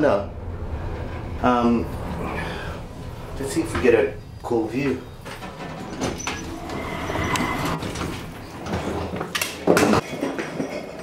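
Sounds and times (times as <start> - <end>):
lift running low rumble: 0.0 - 8.7
lift doors opening: 1.9 - 9.2.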